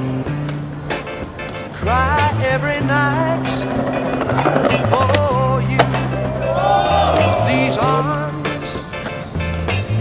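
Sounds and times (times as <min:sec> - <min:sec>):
skateboard wheels rolling on stone: 0:00.4 - 0:08.0
skateboard clack: 0:01.4 - 0:08.0.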